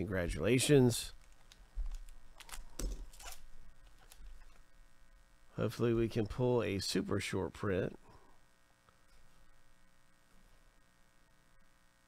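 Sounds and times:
foil wrapper tearing: 1.2s - 4.5s
cards rustling: 1.2s - 4.6s.

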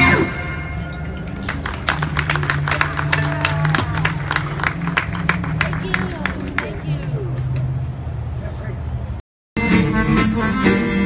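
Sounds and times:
audience clapping: 1.4s - 7.1s
people talking: 5.6s - 7.4s.

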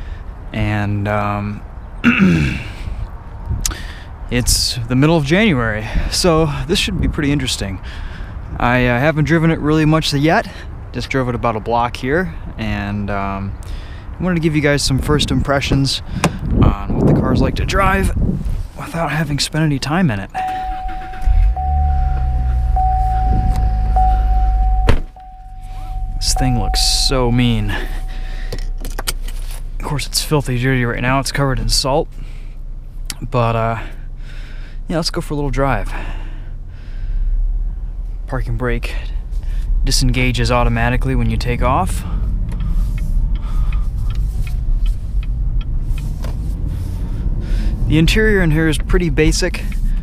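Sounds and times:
car engine starting and idling: 17.4s - 50.0s
car warning chime: 20.4s - 29.2s.

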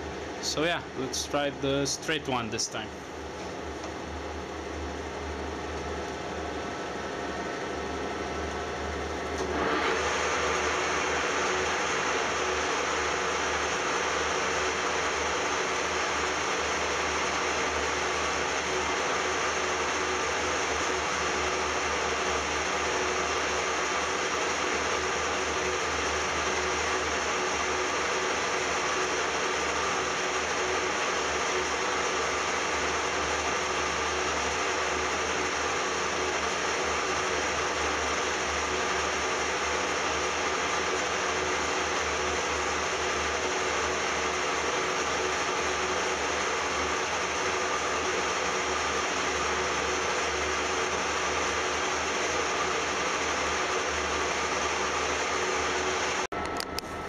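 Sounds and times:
metal lathe whirring: 0.0s - 56.6s.

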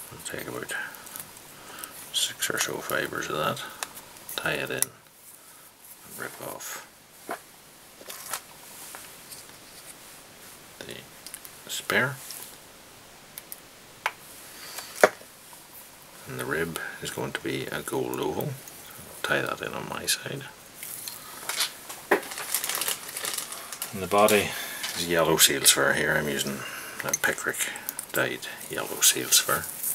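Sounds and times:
rustling and crinkling handling: 7.2s - 10.6s, 20.3s - 29.9s
scratchy rustle of thread and feathers: 20.8s - 25.2s, 28.6s - 29.9s.

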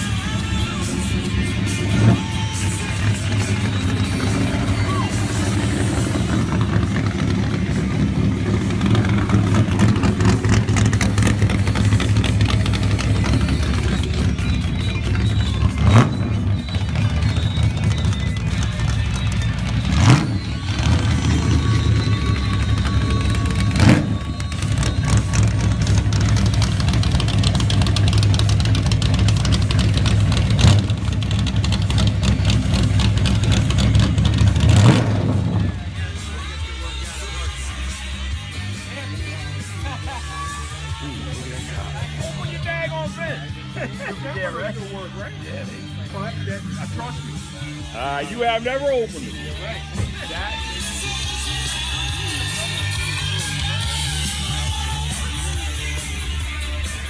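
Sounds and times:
engine revving: 0.0s - 37.9s
car engine idling loudly: 0.0s - 57.0s.

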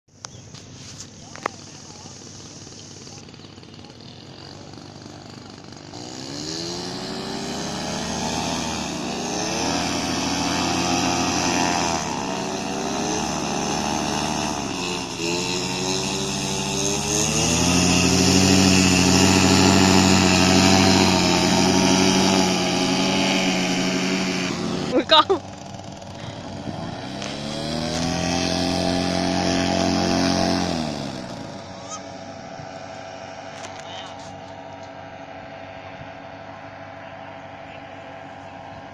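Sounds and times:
paramotor engine and propeller: 0.1s - 38.9s.

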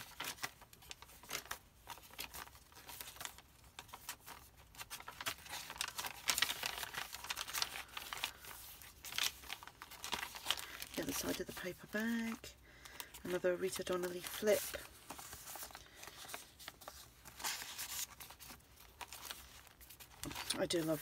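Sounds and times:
paper pages rustling: 0.0s - 21.0s.

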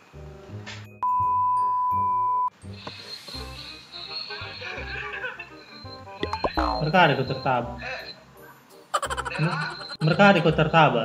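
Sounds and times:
background music: 0.0s - 11.0s
steady test tone beep: 1.0s - 2.5s, 5.7s - 8.2s, 9.2s - 10.2s.

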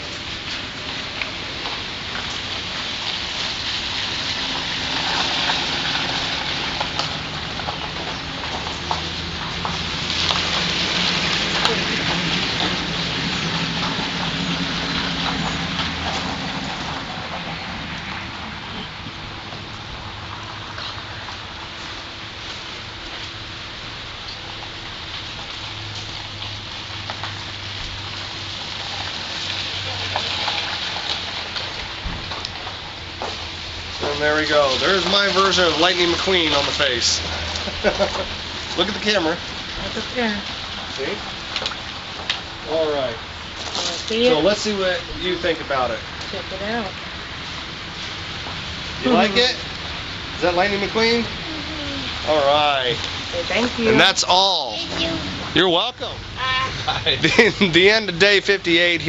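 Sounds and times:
steady rain falling: 0.0s - 59.0s.

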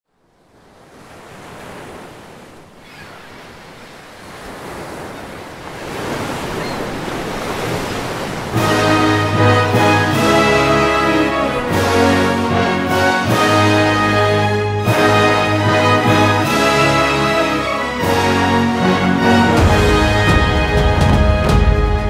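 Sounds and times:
ocean waves breaking: 0.1s - 22.0s
orchestral music with brass: 8.5s - 22.0s.

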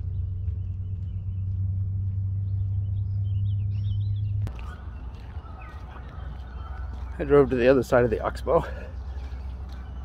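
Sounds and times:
low rumble: 0.0s - 7.3s
faint birdsong: 0.0s - 10.0s.

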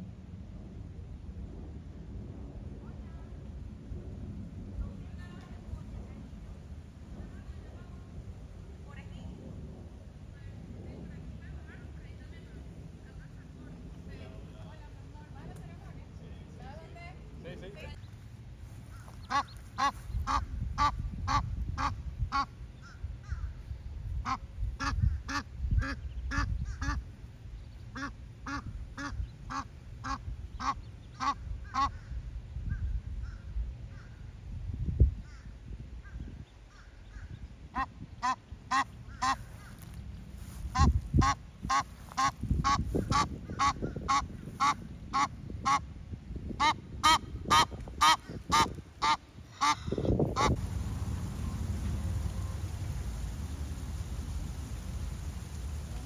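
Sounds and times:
goose honking: 19.0s - 22.5s, 46.6s - 52.7s
low rumble: 50.1s - 56.0s.

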